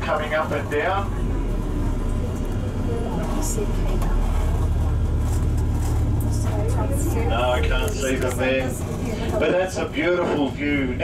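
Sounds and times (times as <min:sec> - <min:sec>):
motor vehicle engine rumble passing: 0:00.0 - 0:11.0.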